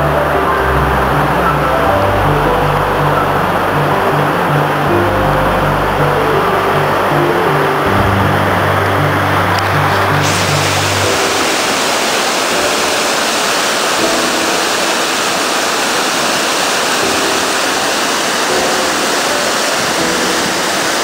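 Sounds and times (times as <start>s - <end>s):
water rushing through sluice gate: 0.0s - 21.0s.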